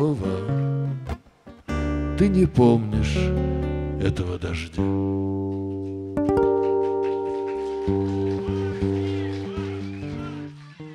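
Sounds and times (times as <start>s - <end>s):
low plucked guitar notes: 0.0s - 9.6s
acoustic guitar chord ringing: 6.2s - 9.7s.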